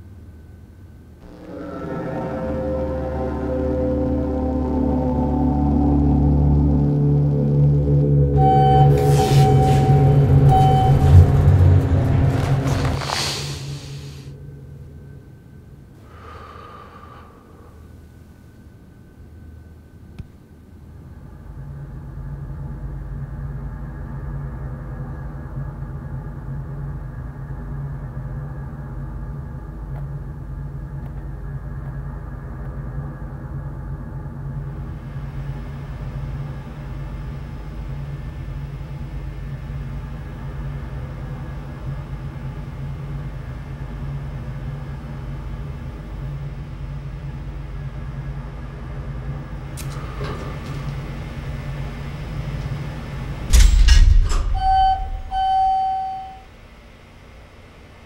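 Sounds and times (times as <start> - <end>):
elevator humming: 1.2 - 58.0
elevator stopping clunk: 8.2 - 13.1, 49.8 - 56.5
electronic chime: 8.3 - 11.5, 54.0 - 56.5.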